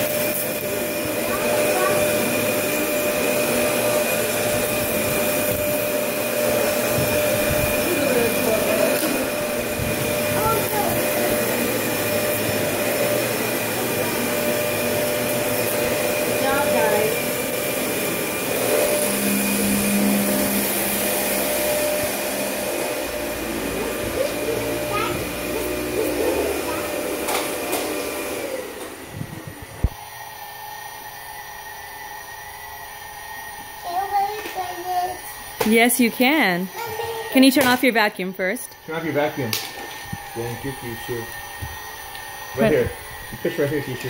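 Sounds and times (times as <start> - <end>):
vacuum cleaner running: 0.0 - 44.0.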